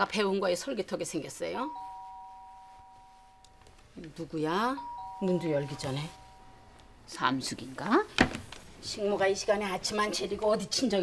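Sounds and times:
two-tone doorbell chime: 0:01.6 - 0:03.6, 0:04.6 - 0:06.8.

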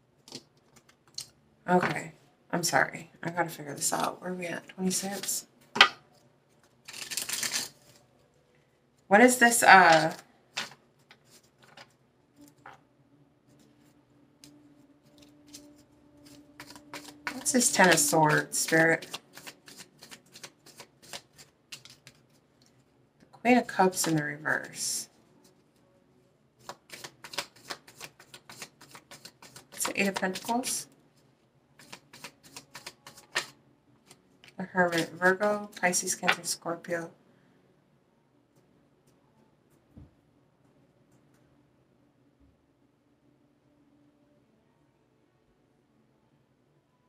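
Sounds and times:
cards being shuffled: 0:04.9 - 0:05.9, 0:06.6 - 0:08.0, 0:09.8 - 0:12.7, 0:15.1 - 0:22.8, 0:26.6 - 0:30.8, 0:31.8 - 0:36.5.

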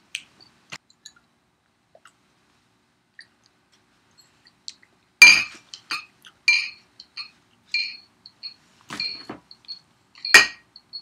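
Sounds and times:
sharp clink with echo: 0:10.3 - 0:10.6.

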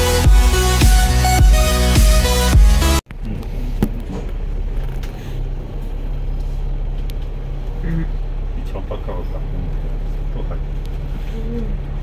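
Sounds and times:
bus engine and road noise: 0:02.3 - 0:12.0.

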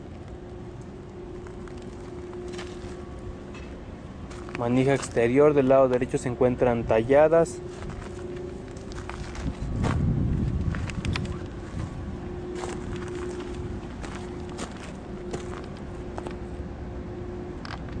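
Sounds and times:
faint steady hum: 0:00.0 - 0:18.0
low rumbling: 0:00.0 - 0:18.0
footsteps on dirt: 0:01.4 - 0:03.2, 0:04.3 - 0:05.2, 0:07.6 - 0:16.5
camera handling noise: 0:10.6 - 0:11.6.

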